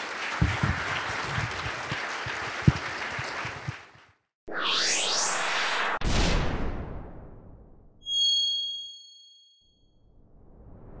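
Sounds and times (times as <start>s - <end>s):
high metallic ding: 8.0s - 9.8s.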